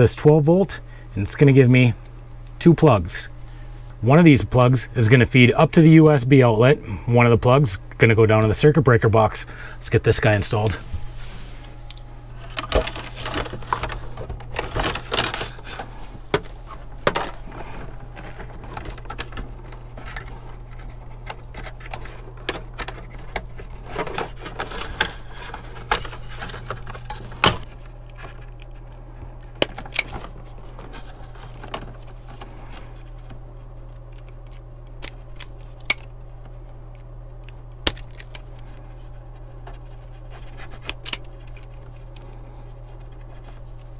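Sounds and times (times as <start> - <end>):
steady low hum: 0.0 - 43.9
wires rustling: 9.8 - 43.9.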